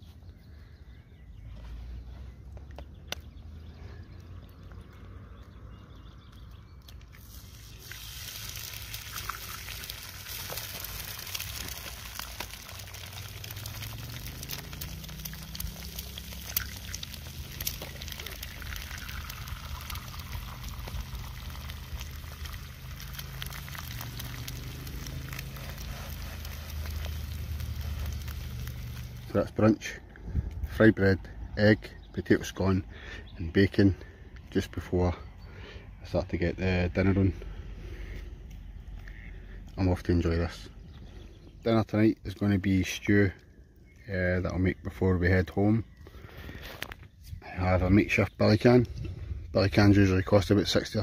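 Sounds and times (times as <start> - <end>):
eggs sizzling in a pan: 7.2 - 29.4
low rumble: 11.0 - 31.6.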